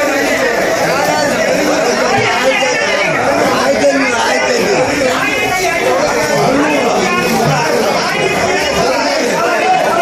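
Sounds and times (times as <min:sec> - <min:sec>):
crowd chatter: 0:00.0 - 0:10.0.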